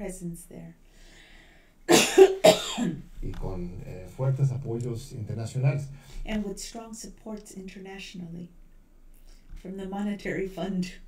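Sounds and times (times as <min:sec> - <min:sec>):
woman coughing: 0:01.9 - 0:03.0.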